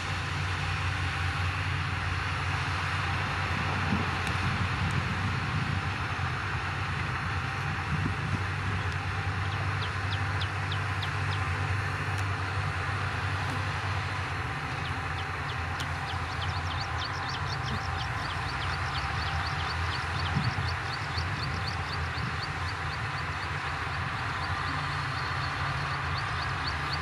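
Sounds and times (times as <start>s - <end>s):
diesel engine running: 0.0s - 27.0s.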